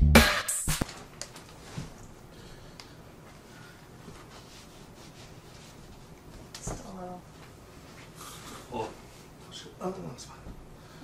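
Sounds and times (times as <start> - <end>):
hands sliding over fabric: 4.0 - 6.5
mattress rustling and brushing: 4.0 - 6.9.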